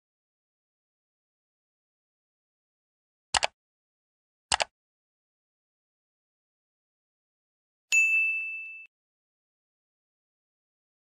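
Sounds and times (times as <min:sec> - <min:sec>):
notification bell ding: 0:07.9 - 0:08.9.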